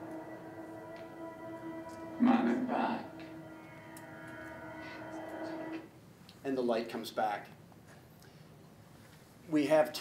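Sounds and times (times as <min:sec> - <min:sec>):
eerie drone over speakers: 0:00.0 - 0:06.0.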